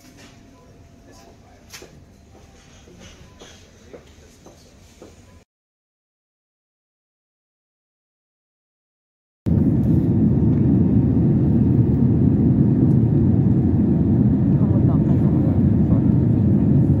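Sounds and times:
jet cabin engine rumble: 0:09.5 - 0:17.0.

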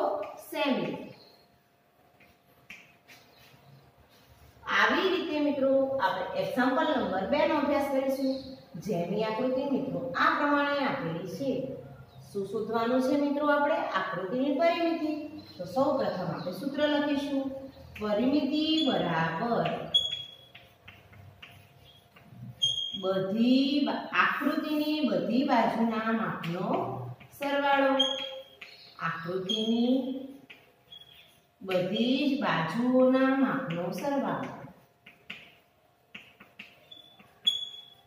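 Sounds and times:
chalk tapping and scraping: 0:02.1 - 0:04.6, 0:19.6 - 0:23.0, 0:26.4 - 0:32.0, 0:33.6 - 0:38.0.

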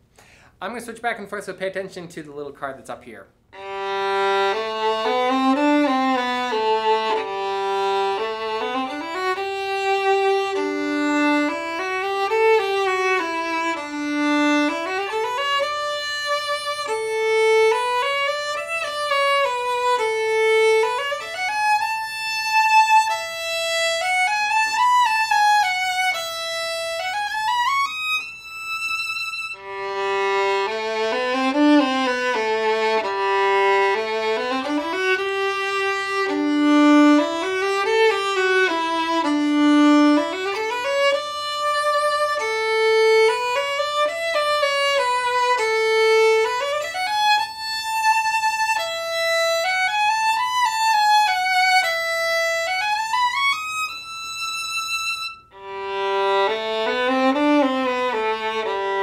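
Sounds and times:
solo violin melody: 0:03.5 - 0:59.0.

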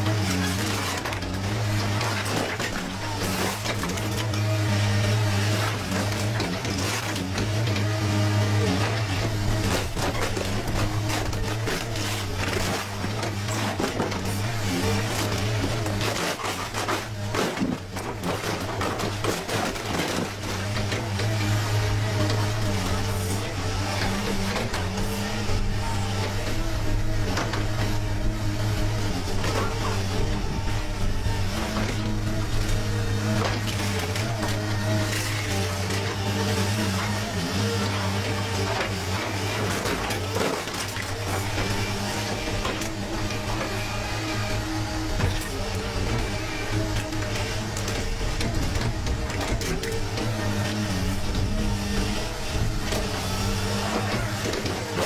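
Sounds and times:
diesel excavator engine droning: 0:00.0 - 0:55.0
hydraulic grab crushing car body: 0:00.0 - 0:55.0
sheet metal crunching and scraping: 0:00.0 - 0:55.0.

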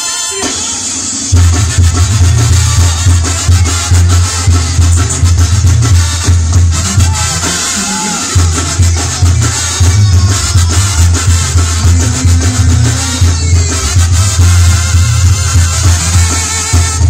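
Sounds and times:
drums and percussion: 0:00.0 - 0:17.0
sousaphone bass line: 0:00.0 - 0:17.0
trumpets and trombones: 0:00.0 - 0:17.0.

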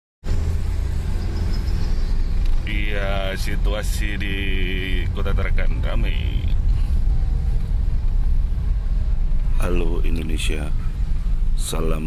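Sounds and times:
car engine and tyres rumbling: 0:00.2 - 0:12.0.

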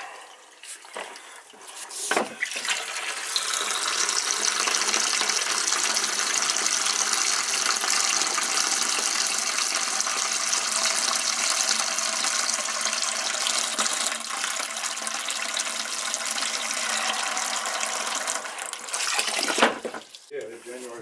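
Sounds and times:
water pouring into plastic bucket: 0:00.0 - 0:20.3.

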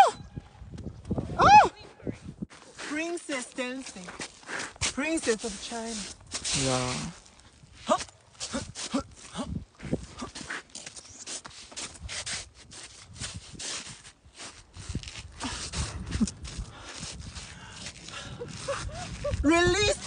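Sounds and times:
boots crunching on snowy ice: 0:02.5 - 0:20.0.

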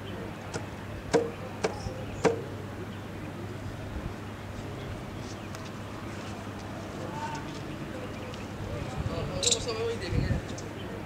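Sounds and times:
low outdoor background: 0:00.0 - 0:11.0.

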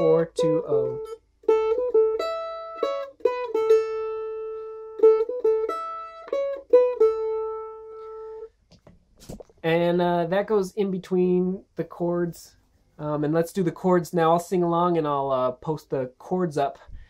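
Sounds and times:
mandolin picking notes: 0:00.0 - 0:08.5.

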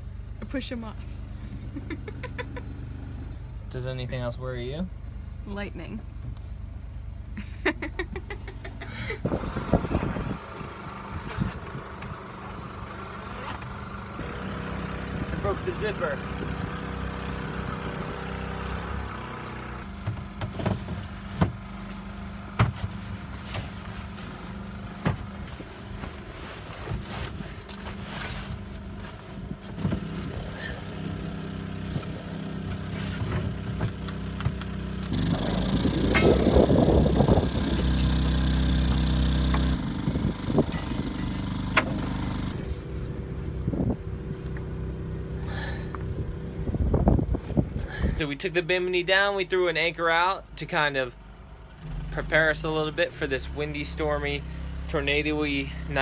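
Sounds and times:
canvas and frame clicks and rustles: 0:22.8 - 0:30.3.

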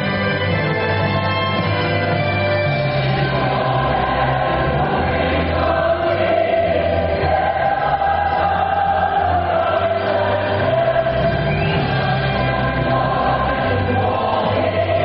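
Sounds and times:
choir singing held notes: 0:02.8 - 0:15.0.

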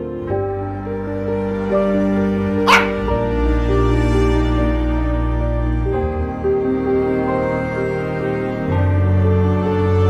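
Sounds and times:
background music with held notes: 0:00.0 - 0:10.0
dog yelp: 0:02.7 - 0:03.1.

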